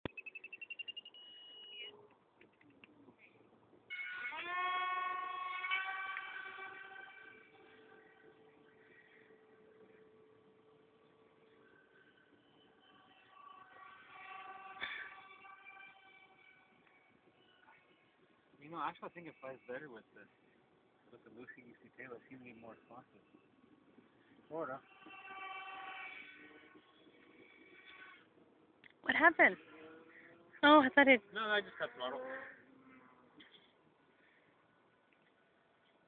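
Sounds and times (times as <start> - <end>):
electric motor and propeller whining: 3.9 - 20.1, 21.2 - 33.7.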